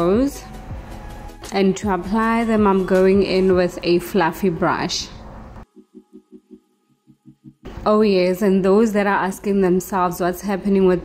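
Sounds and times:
low pulsing background music: 0:00.0 - 0:09.8.

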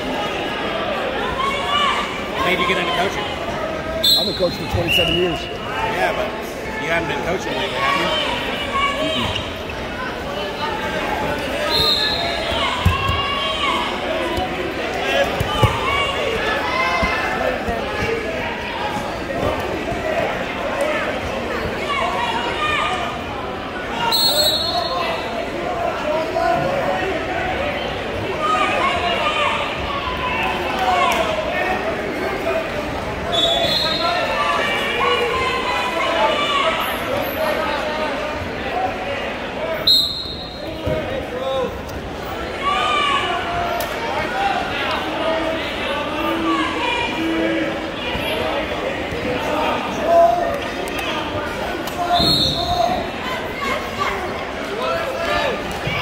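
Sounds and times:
crowd chatter: 0:00.0 - 0:56.0.

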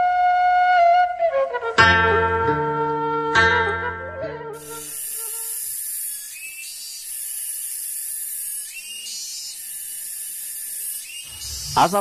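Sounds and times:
insect chirps: 0:04.6 - 0:12.0
insects buzzing: 0:04.6 - 0:12.0.

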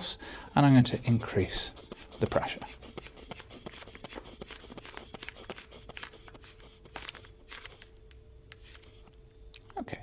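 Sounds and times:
rubber bulb squeezing air: 0:00.5 - 0:09.1.

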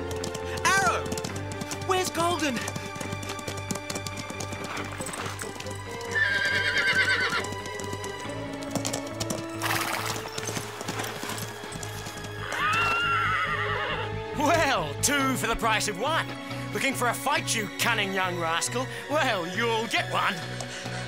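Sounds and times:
hooves clip-clopping: 0:00.0 - 0:18.6, 0:19.2 - 0:21.0
background music: 0:00.0 - 0:21.0
horse whinnying: 0:04.4 - 0:07.5, 0:09.6 - 0:14.2.

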